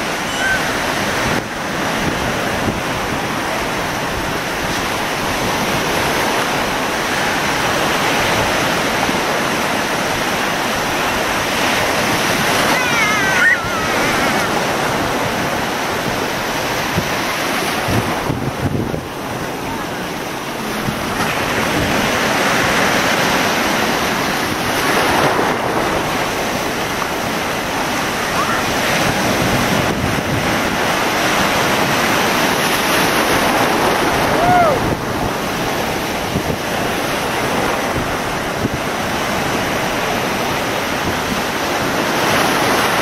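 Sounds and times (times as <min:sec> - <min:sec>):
surf breaking and washing: 0:00.0 - 0:43.0
wind buffeting microphone: 0:00.0 - 0:43.0.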